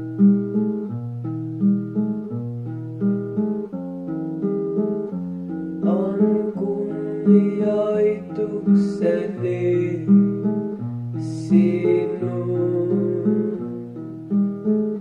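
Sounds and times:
acoustic guitar picking: 0.0s - 15.0s
person singing: 5.8s - 14.0s.

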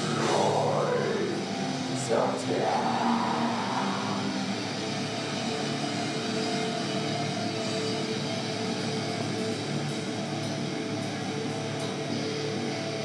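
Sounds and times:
heavy metal band playing live: 0.0s - 6.4s
distorted electric guitars: 0.0s - 13.0s.

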